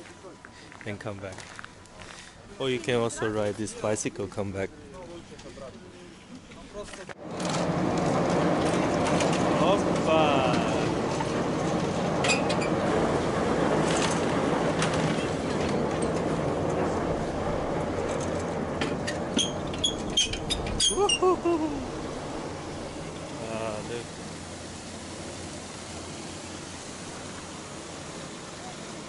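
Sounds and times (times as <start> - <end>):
chairlift machinery drone: 7.2 - 29.0.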